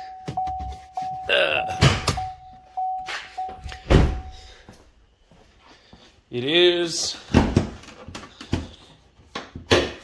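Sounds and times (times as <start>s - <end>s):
vehicle warning chime dinging: 0.0s - 4.7s
heavy thuds: 3.5s - 4.8s.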